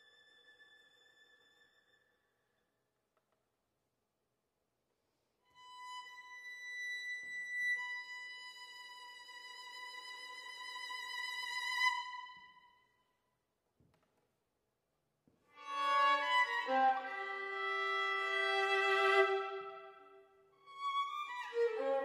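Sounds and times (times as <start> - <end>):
solo violin: 0.0 - 2.5, 5.4 - 12.9, 15.5 - 22.0.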